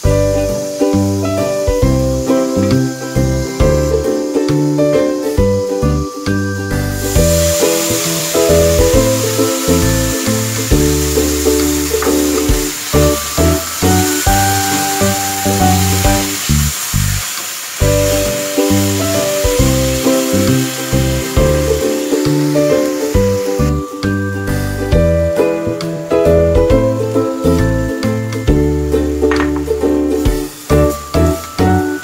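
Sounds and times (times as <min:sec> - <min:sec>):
instrumental keyboard music: 0:00.0 - 0:16.7, 0:17.8 - 0:32.0
tomatoes sizzling in a pan: 0:00.0 - 0:32.0.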